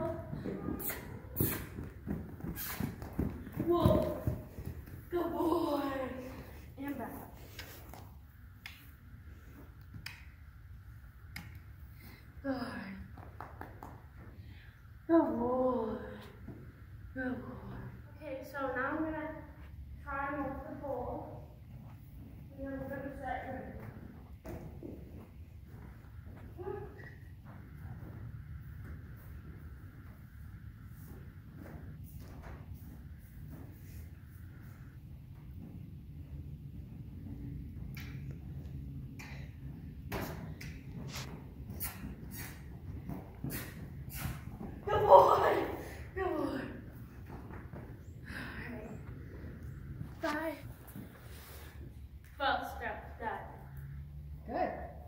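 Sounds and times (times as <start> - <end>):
woman speaking: 5.1 - 7.3, 44.9 - 46.8
steady low rumble: 14.4 - 51.2
hooves and footsteps in sand: 20.3 - 45.0.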